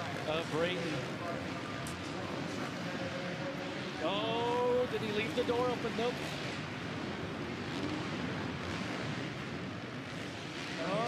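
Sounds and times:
faint steady engine note: 0.0 - 11.0
race motorcycles running: 0.0 - 11.0
stadium noise: 0.0 - 11.0.

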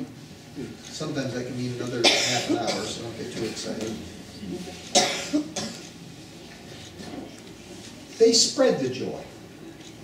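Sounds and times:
person coughing: 2.0 - 3.0, 4.9 - 5.9.

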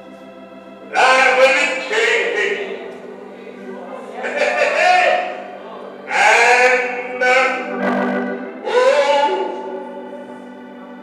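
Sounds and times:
man singing into a microphone: 6.1 - 7.8, 8.6 - 9.7.

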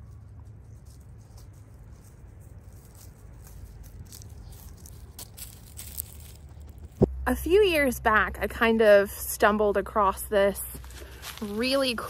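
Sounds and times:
dry leaves and grass rustling: 0.0 - 7.4, 10.1 - 12.0
steady low rumble: 0.0 - 12.0.

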